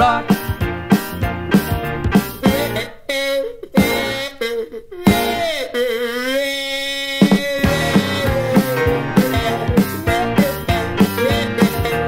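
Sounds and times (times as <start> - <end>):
skiffle band music: 0.0 - 3.0, 3.8 - 4.4, 5.1 - 5.6, 7.2 - 12.0
buzzy kazoo notes: 2.3 - 12.0.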